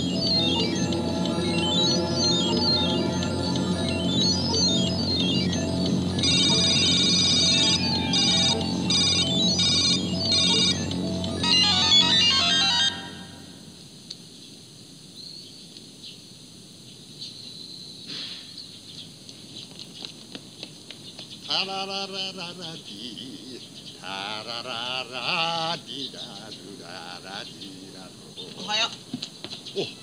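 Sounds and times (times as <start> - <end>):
high beeping synthesizer notes: 0.0 - 13.7
low synthesizer drone: 0.0 - 13.8
faint background noise: 10.8 - 30.0.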